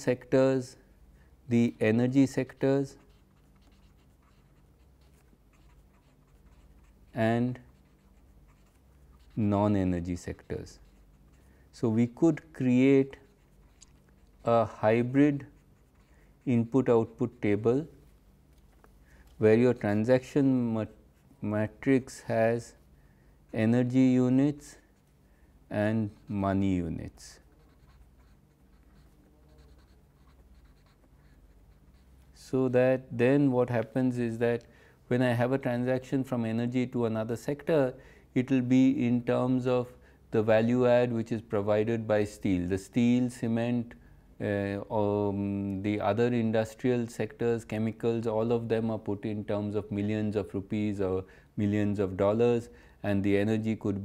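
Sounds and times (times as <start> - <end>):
low steady hum: 0.0 - 54.0
marker pen scratching on paper: 2.2 - 11.6, 12.8 - 17.2, 27.4 - 32.4.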